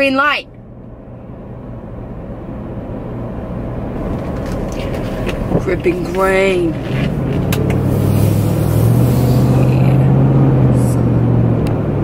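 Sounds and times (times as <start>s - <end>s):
car engine: 0.0s - 12.0s
road noise: 0.0s - 12.0s.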